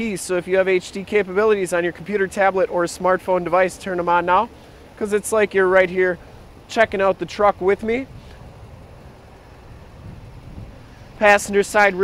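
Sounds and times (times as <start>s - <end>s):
faint outdoor background noise: 0.0s - 12.0s
wind buffeting microphone: 1.0s - 12.0s.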